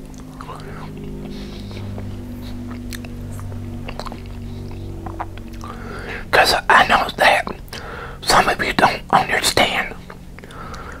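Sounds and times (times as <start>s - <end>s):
chewing food: 0.0s - 6.3s, 7.1s - 7.9s, 8.8s - 11.0s
steady low hum: 0.0s - 11.0s
wet mouth clicks: 0.1s - 5.8s, 6.4s - 10.9s.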